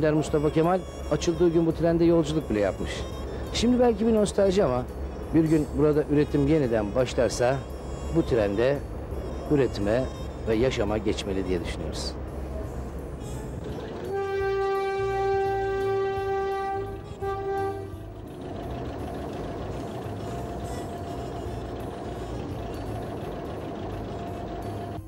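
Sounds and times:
train rumbling: 1.8 - 25.0
train horn blasts: 14.0 - 18.4.

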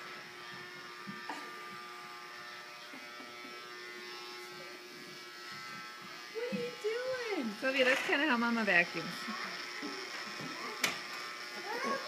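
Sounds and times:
toy vacuum motor buzzing: 0.0 - 12.0.

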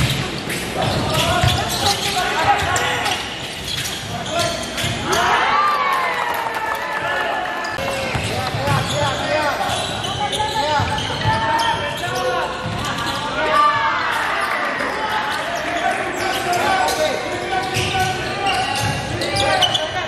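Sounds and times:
sneaker squeaks: 0.0 - 5.4, 7.6 - 20.0
basketball dribbling: 7.9 - 9.3.

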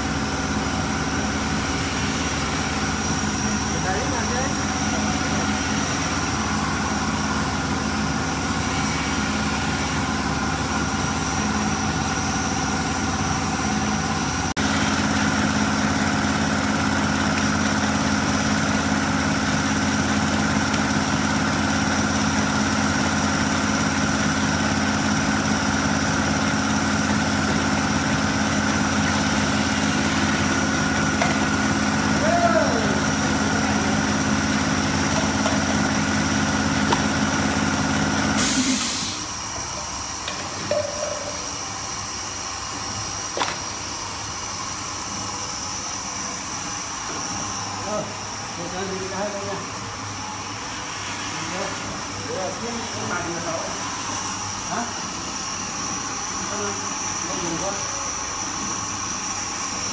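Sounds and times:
gas burners hissing: 0.0 - 59.9
machine motor hum and whine: 0.0 - 59.9.

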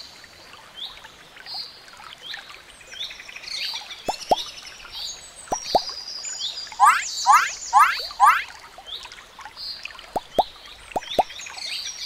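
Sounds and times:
water drops plopping: 4.1 - 4.5, 5.5 - 5.9, 10.2 - 11.3
loud rising whistled calls: 6.8 - 8.5.

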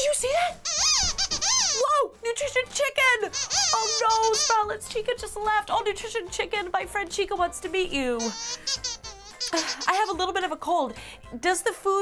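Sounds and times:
squeaky chirping puppet voice: 0.6 - 1.9, 3.2 - 4.8, 8.2 - 10.2.

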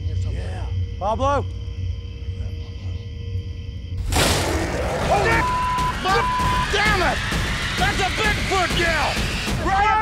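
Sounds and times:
censor bleep: 5.3 - 6.8.

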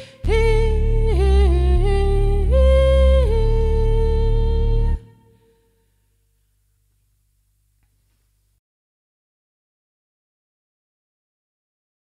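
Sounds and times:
looped synth bass: 0.0 - 5.1
woman singing long notes: 0.0 - 5.8.

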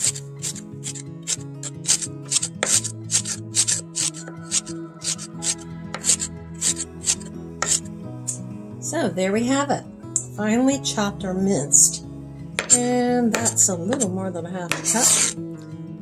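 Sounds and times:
background music: 0.0 - 16.0
knife chopping on wooden board: 1.8 - 3.8, 7.6 - 7.8, 12.6 - 14.1, 14.7 - 15.4.

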